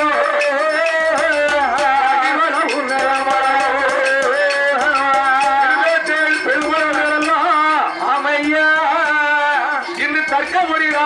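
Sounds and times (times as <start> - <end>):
hand-played clay pot percussion: 0.0 - 11.0.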